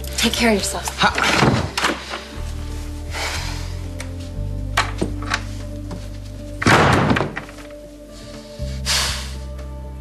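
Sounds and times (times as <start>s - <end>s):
soft dramatic music: 0.0s - 10.0s
door shutting with a thud: 6.6s - 7.5s.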